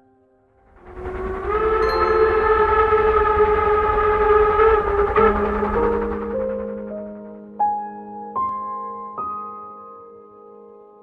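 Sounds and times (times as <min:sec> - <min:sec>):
low rumble: 0:00.5 - 0:08.2
steam locomotive whistle: 0:00.8 - 0:06.6.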